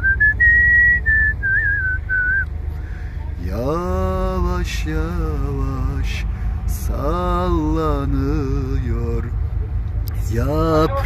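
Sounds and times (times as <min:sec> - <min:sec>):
person whistling a tune: 0:00.0 - 0:02.4
low steady rumble: 0:00.0 - 0:11.0.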